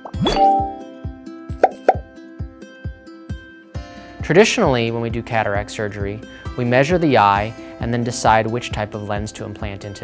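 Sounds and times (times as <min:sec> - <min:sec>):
background music with steady beat: 0:00.0 - 0:10.0.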